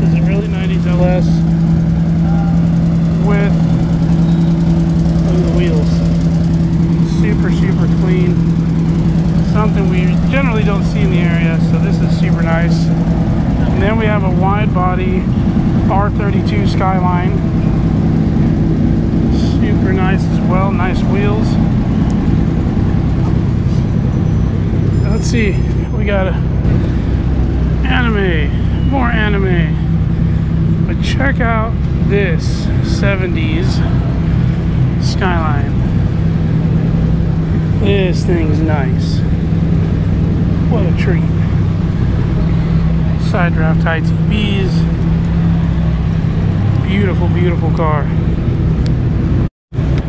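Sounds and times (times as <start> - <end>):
car engine idling: 0.0 - 50.0
loud low mechanical hum: 0.0 - 50.0.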